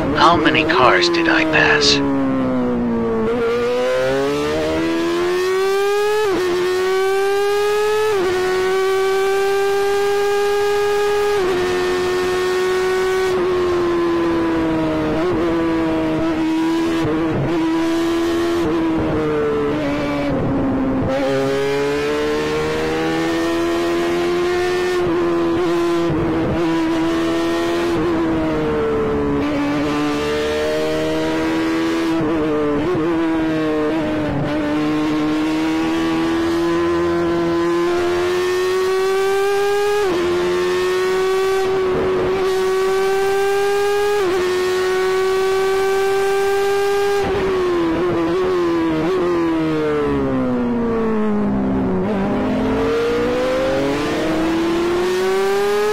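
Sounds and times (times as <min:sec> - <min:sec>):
racing car engine at high revs: 0:02.9 - 0:55.9.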